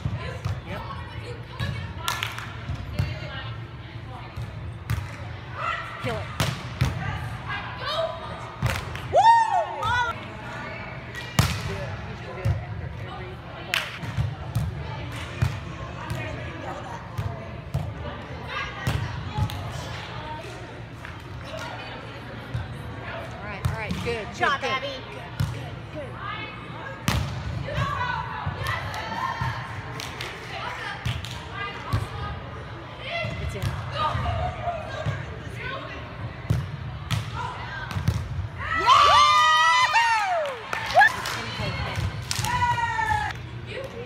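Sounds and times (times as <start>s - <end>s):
players' voices: 0.0s - 44.0s.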